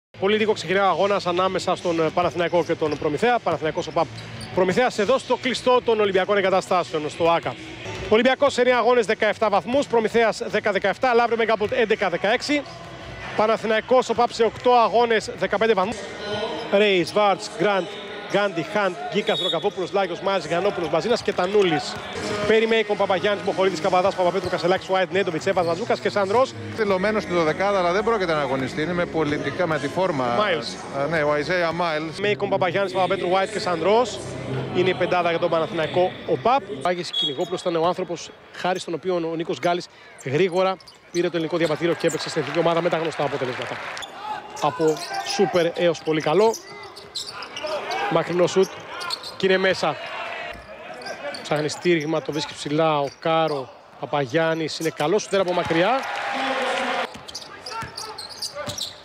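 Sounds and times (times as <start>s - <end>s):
basketball bouncing on court: 57.0s - 59.0s.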